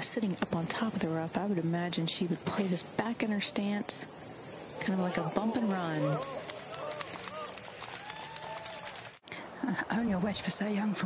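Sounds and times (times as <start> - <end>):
outdoor crowd noise: 0.0 - 11.0.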